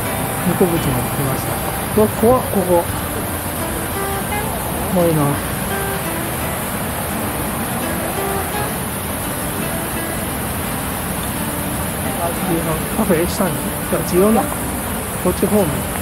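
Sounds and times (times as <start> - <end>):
small waterfall rushing: 0.0 - 16.0.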